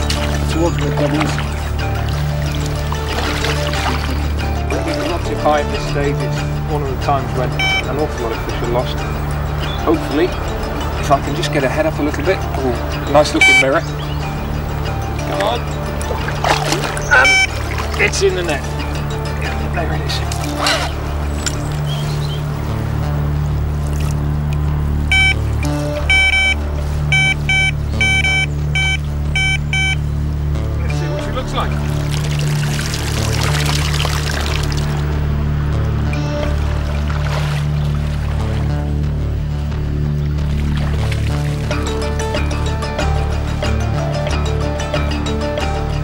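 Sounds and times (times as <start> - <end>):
water pouring off landing net: 0.0 - 6.2, 15.2 - 22.7, 23.7 - 24.5, 31.6 - 35.2, 36.4 - 39.0, 40.4 - 42.3
background music: 0.0 - 46.0
short high beeps: 7.6 - 7.9, 17.1 - 17.6, 25.1 - 25.4, 26.0 - 30.0.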